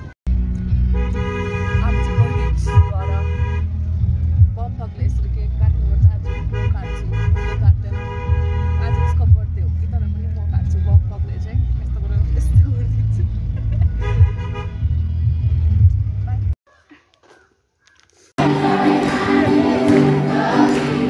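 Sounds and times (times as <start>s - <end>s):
vehicle road and engine rumble: 0.0s - 16.6s
car horn tooting: 0.9s - 3.7s, 6.2s - 9.4s, 13.9s - 15.0s.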